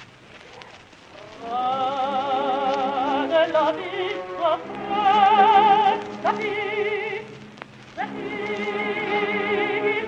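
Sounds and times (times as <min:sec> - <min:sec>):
record surface hiss: 0:00.0 - 0:10.0
mezzo-soprano opera singing: 0:01.3 - 0:10.0.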